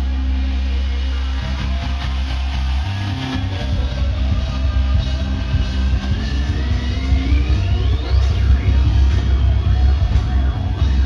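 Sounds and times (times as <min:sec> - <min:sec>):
reggae band playing: 0:00.1 - 0:11.0.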